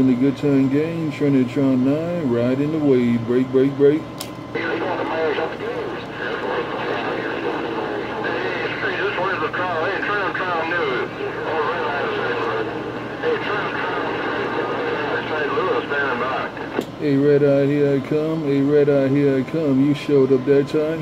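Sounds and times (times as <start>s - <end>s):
distorted radio voices: 0.0s - 21.0s
steady radio hum: 0.0s - 21.0s
radio channel click: 4.2s - 8.4s, 16.6s - 17.0s.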